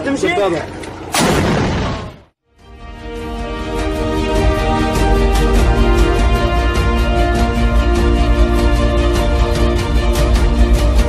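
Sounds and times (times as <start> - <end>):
rocket launcher blast: 1.1 - 2.4.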